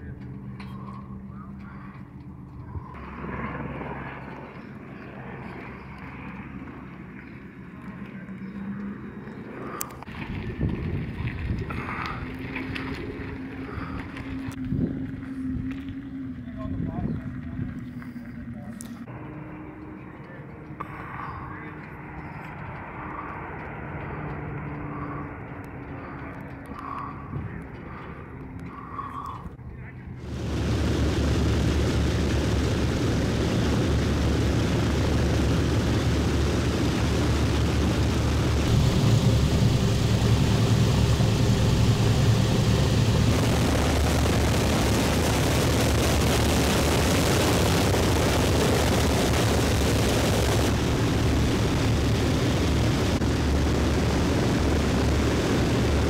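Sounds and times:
tow tractor engine running: 0.0s - 56.0s.

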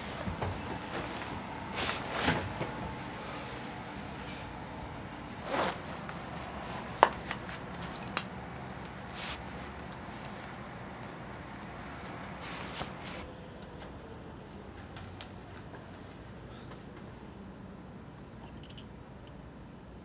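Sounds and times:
fabric rustling: 0.0s - 4.5s, 5.4s - 13.3s.

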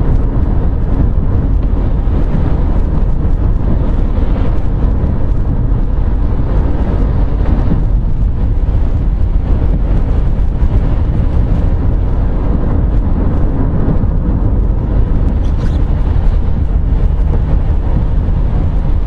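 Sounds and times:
car road and engine rumble: 0.0s - 19.0s.

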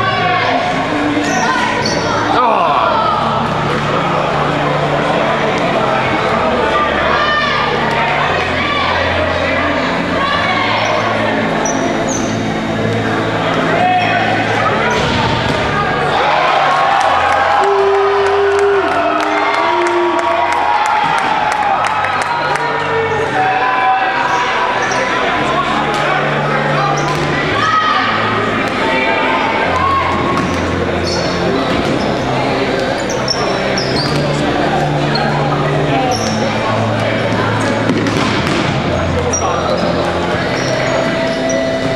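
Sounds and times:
hubbub of voices: 0.0s - 41.9s.

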